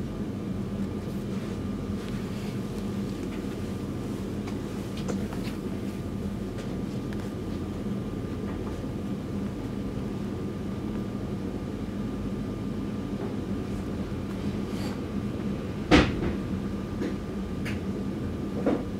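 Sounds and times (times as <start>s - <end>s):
steady low hum: 0.0s - 18.9s.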